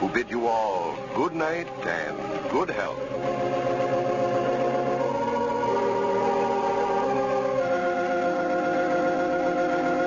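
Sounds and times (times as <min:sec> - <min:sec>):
organ sustained chords: 0:00.0 - 0:10.0.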